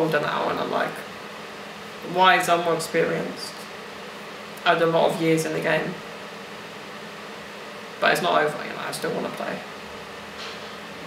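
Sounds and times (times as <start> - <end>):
room tone hiss: 0.0 - 11.0.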